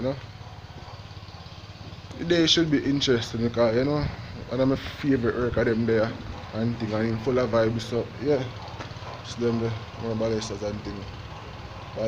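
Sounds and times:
low motor rumble: 0.0s - 12.0s.

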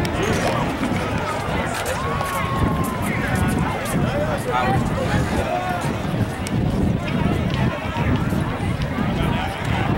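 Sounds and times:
indistinct voices talking: 0.0s - 9.9s
outdoor background noise: 0.0s - 9.9s.

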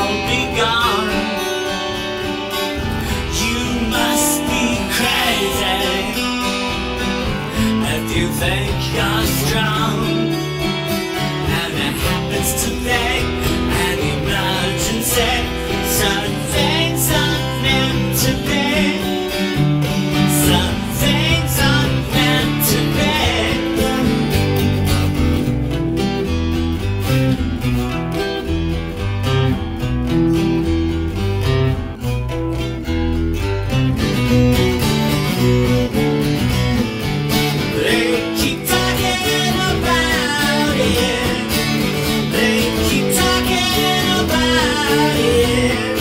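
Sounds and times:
acoustic guitar playing: 0.0s - 46.0s.

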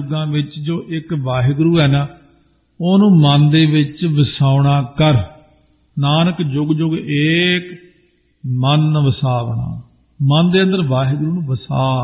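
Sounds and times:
man chanting: 0.0s - 5.4s, 6.0s - 12.0s.

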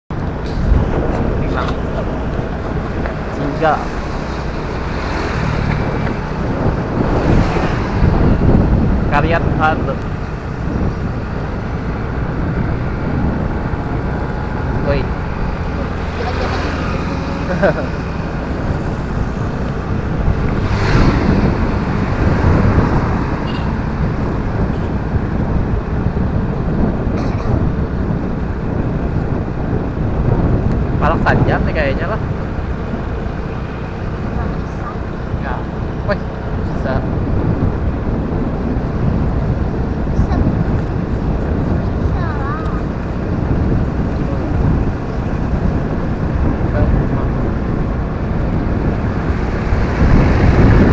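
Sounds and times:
motorcycle engine rumble: 0.1s - 50.9s
road noise: 0.1s - 50.9s
wind rushing over microphone: 0.1s - 50.9s.

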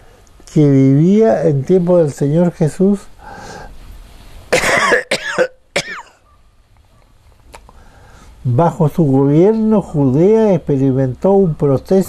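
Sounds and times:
breath in: 3.2s - 3.8s, 7.7s - 8.4s
man coughing: 4.5s - 6.2s.

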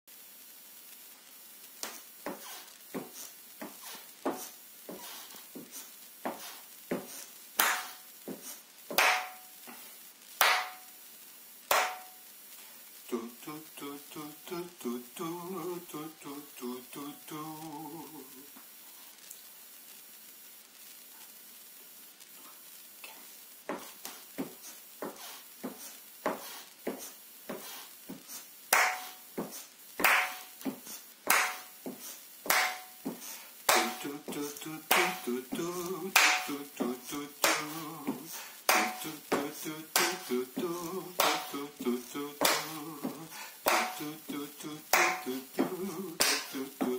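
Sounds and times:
hand claps: 6.3s - 9.5s, 10.4s - 10.9s, 11.7s - 12.1s, 28.7s - 44.2s, 44.9s - 46.9s.

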